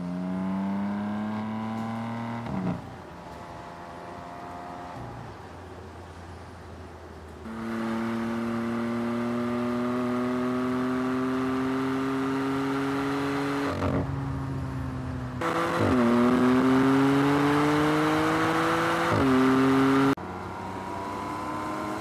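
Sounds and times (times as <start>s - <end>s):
car engine accelerating hard: 0.0s - 2.8s, 7.5s - 14.2s, 15.4s - 22.0s.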